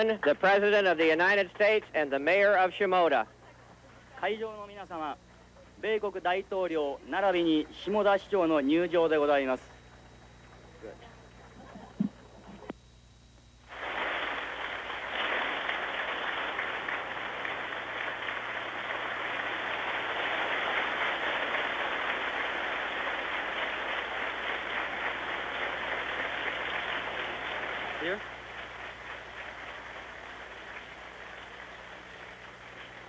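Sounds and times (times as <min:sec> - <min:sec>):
large audience clapping: 0:00.0 - 0:02.0, 0:13.6 - 0:33.0.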